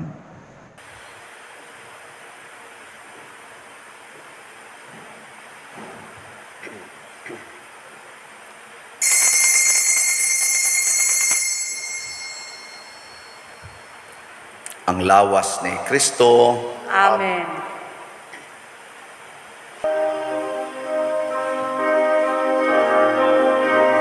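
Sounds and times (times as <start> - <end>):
small metal bell ringing: 9.0 - 14.0.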